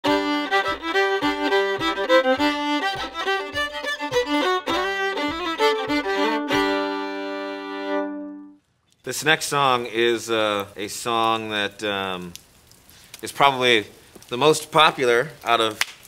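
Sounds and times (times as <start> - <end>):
fiddle playing a lively tune: 0.0 - 8.6.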